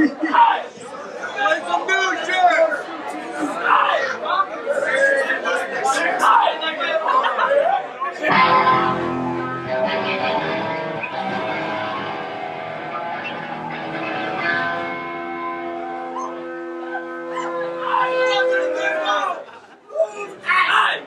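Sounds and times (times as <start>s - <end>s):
electric guitars ringing chords: 8.3s - 18.8s.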